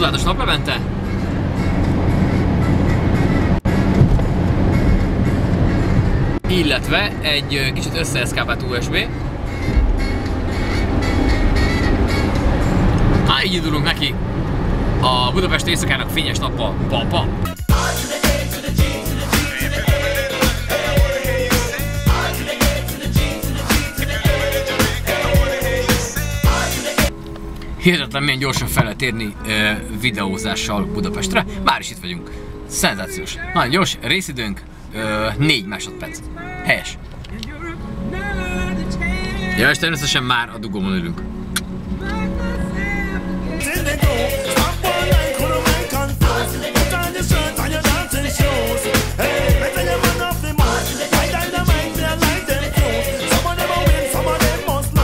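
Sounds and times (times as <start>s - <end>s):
car cabin road and engine rumble: 0.0s - 18.0s, 27.0s - 55.0s
music with a beat: 17.5s - 27.2s, 43.6s - 55.0s
person with gliding pitch voice: 27.4s - 33.5s.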